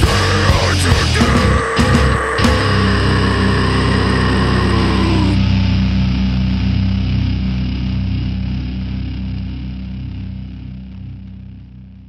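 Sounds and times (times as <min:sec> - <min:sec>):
guitar and bass chord ringing: 0:00.0 - 0:12.0.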